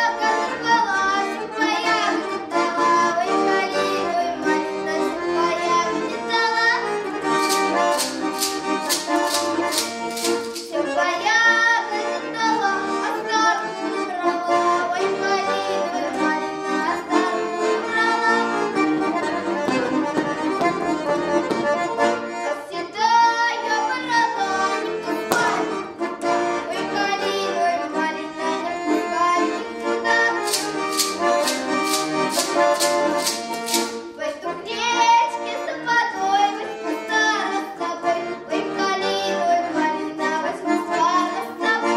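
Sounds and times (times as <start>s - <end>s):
button accordion folk dance tune: 0.0s - 41.9s
wooden clapper clacking: 7.3s - 10.8s, 25.3s - 25.8s, 30.4s - 34.1s.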